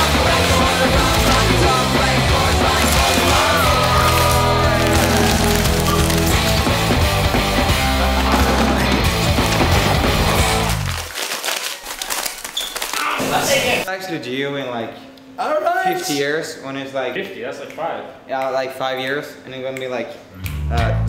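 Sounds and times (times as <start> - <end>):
music with heavy bass line: 0.0 - 11.0.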